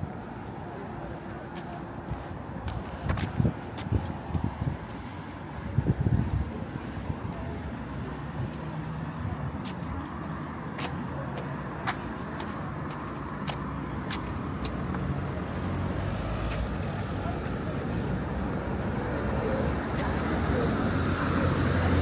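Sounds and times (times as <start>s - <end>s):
cars passing: 0.0s - 22.0s.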